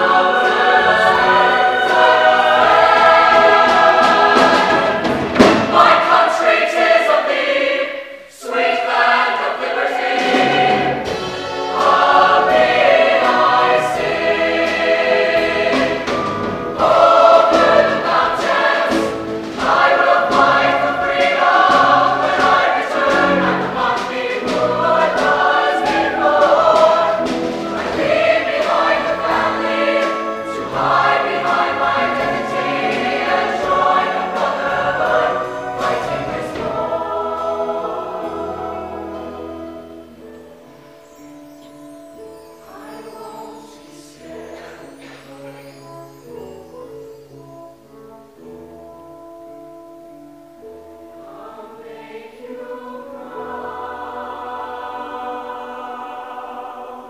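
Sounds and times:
choir singing in harmony: 0.0s - 57.0s.

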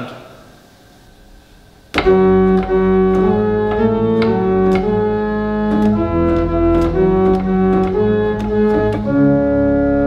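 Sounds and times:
pipe organ chord: 1.0s - 10.0s.

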